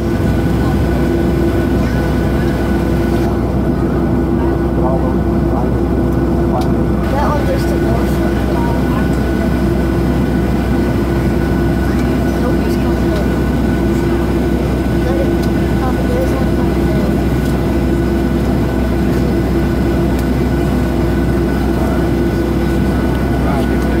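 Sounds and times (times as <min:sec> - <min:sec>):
constant hum: 0:00.0 - 0:24.0
jet engines low rumble: 0:00.0 - 0:24.0.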